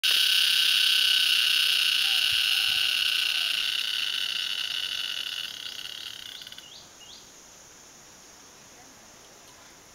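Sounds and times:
cricket trilling: 0.0s - 9.9s.

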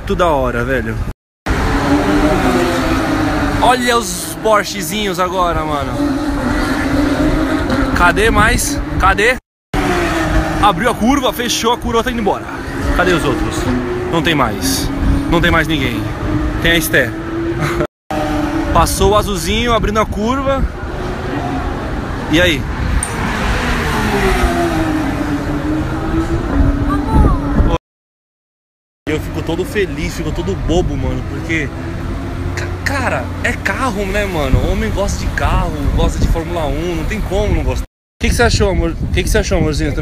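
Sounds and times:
race car engines at high revs: 1.5s - 20.0s, 20.6s - 27.7s, 29.2s - 37.3s.

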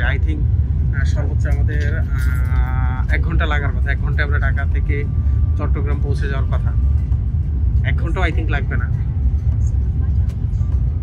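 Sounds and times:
train rumble inside cabin: 0.0s - 11.0s.

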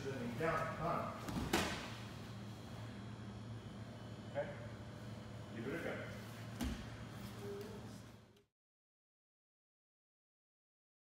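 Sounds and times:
low room hum: 0.0s - 8.5s.

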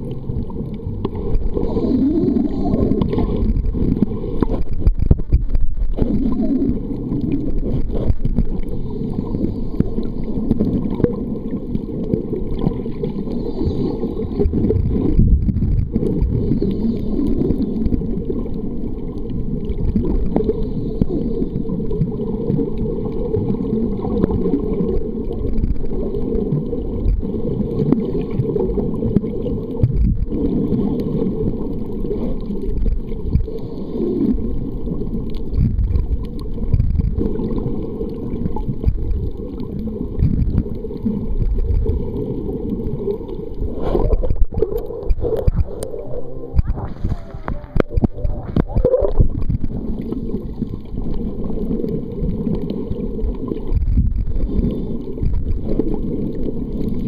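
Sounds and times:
low underwater rumble: 0.0s - 57.0s.

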